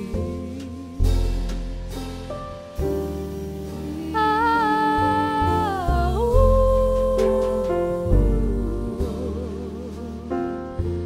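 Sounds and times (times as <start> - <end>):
double bass: 0.0 - 11.0
piano: 0.0 - 11.0.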